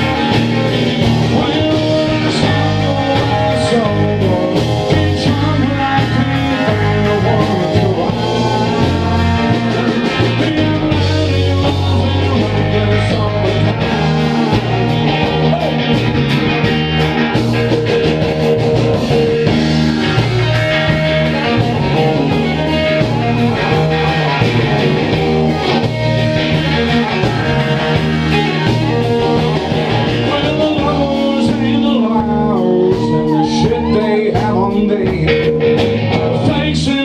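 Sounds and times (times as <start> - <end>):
bass guitar: 0.0 - 37.0
drum kit: 0.0 - 37.0
electric guitars: 0.0 - 37.0.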